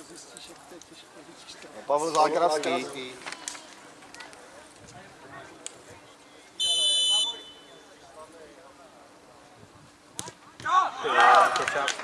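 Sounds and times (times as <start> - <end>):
faint spectator chatter: 0.0 - 12.0
referee's whistle blast: 6.6 - 7.8.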